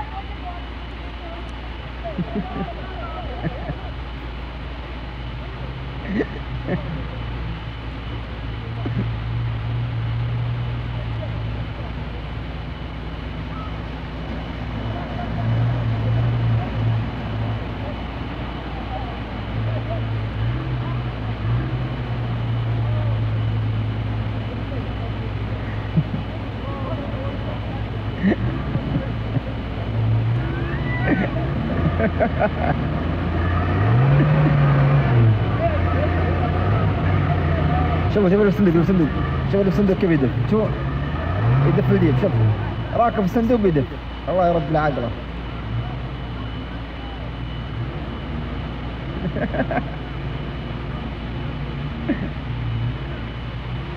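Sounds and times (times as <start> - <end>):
vehicle engine revving: 0.0 - 53.9.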